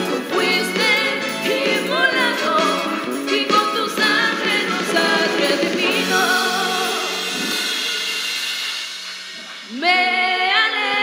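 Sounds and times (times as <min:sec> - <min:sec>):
voices singing gospel: 0:00.0 - 0:08.0, 0:09.7 - 0:11.0.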